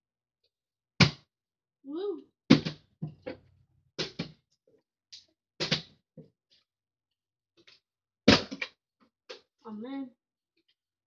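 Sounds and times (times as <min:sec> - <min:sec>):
plastic bottle knocks and clicks: 0:05.6 - 0:05.9, 0:08.3 - 0:09.4.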